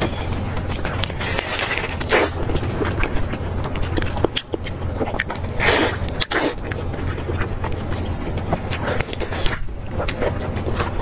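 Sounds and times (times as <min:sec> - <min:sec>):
lettuce leaves rustling: 0:00.0 - 0:11.0
steady low hum: 0:00.0 - 0:11.0
wet chewing and smacking: 0:00.0 - 0:11.0.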